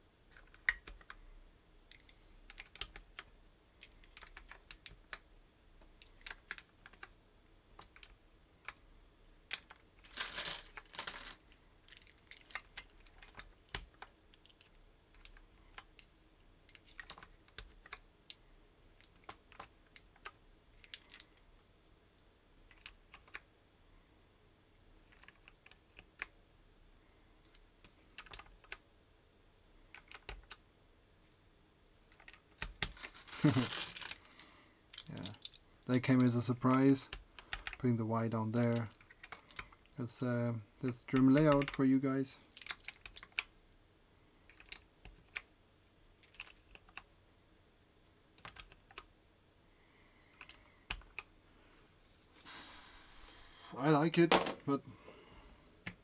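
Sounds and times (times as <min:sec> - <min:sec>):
keycaps clattering in a basket: 0:09.5 - 0:13.4, 0:32.2 - 0:34.3, 0:42.5 - 0:43.4.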